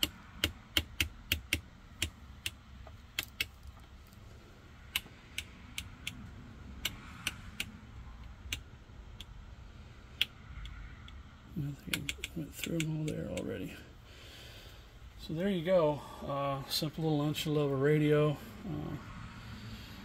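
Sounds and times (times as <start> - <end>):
faint steady hum: 0.0 - 20.0
rotary channel selector clicking: 4.9 - 6.2, 6.8 - 9.4, 10.2 - 13.6.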